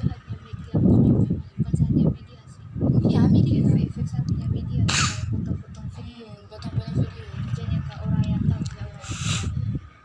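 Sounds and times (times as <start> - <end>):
women talking: 0.0 - 9.9.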